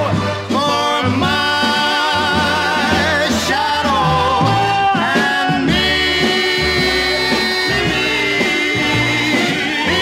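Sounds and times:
swing orchestra music: 0:00.0 - 0:10.0.

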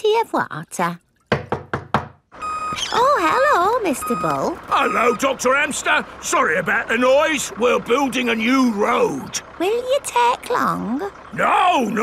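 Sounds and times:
knocking on wooden door: 0:01.3 - 0:02.2
construction machinery noise: 0:02.3 - 0:12.0
steady beeping tone: 0:03.9 - 0:05.4.

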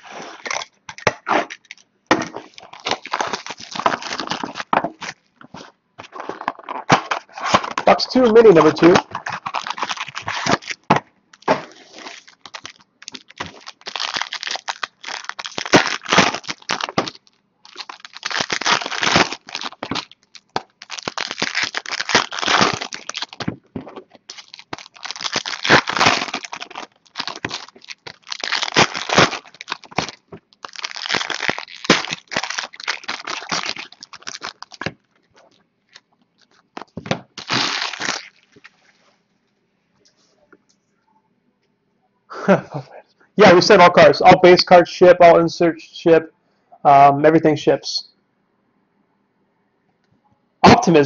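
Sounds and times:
foil wrappers tearing and crinkling: 0:00.0 - 0:01.8, 0:02.4 - 0:05.3, 0:06.0 - 0:38.7.

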